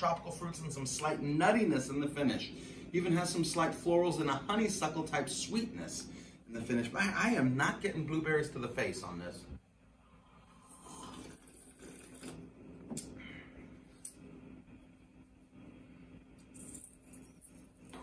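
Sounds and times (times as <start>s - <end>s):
low room hum: 0.0s - 18.0s
sipping from a cup: 10.4s - 13.2s.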